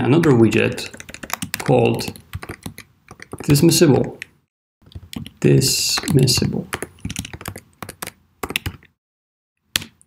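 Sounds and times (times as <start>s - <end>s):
typing on keyboard: 0.8s - 4.3s, 6.0s - 8.9s.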